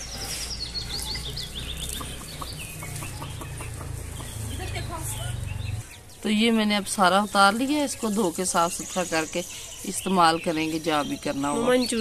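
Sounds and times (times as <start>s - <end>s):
chickens clucking: 0.0s - 6.6s
chicks peeping: 0.0s - 12.0s.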